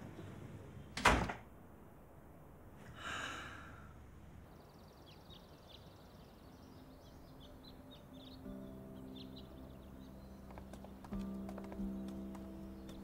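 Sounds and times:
small birds chirping: 0:04.4 - 0:13.0
soft background music: 0:04.5 - 0:13.0.

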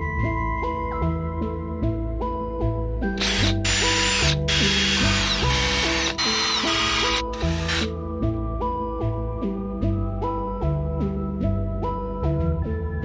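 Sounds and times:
background music: 0:00.0 - 0:13.0
electric drill whine: 0:03.2 - 0:07.9.

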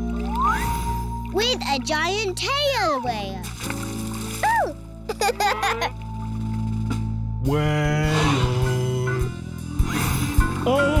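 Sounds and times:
splashy pops and plinks: 0:00.0 - 0:04.9.

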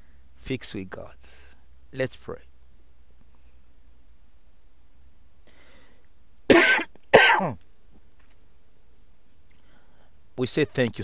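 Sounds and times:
man coughing: 0:06.5 - 0:07.6.

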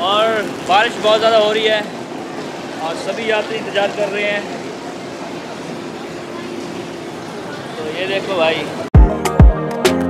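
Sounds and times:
murmur of voices: 0:00.0 - 0:08.9.

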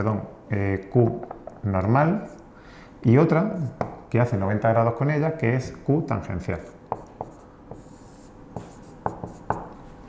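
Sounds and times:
marker writing on whiteboard: 0:06.6 - 0:10.0
marker tip tapping: 0:06.9 - 0:07.9, 0:08.6 - 0:09.7.

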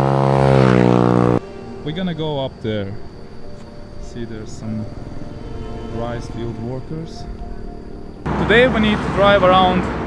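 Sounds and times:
small motorbike engine passing: 0:00.0 - 0:02.1, 0:04.8 - 0:07.3.

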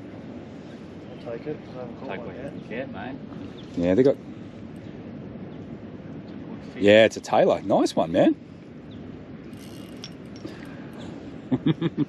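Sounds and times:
fishing reel winding: 0:09.5 - 0:10.5.

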